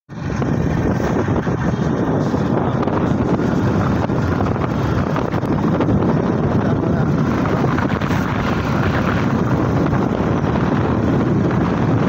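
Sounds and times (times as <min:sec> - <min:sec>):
motorcycle engine: 0:00.1 - 0:12.0
wind buffeting microphone: 0:00.1 - 0:12.0.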